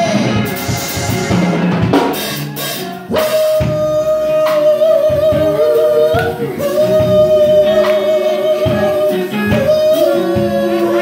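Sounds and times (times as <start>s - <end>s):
bass guitar: 0.0s - 11.0s
drums: 0.0s - 11.0s
keyboard: 0.0s - 11.0s
woman singing: 3.1s - 11.0s.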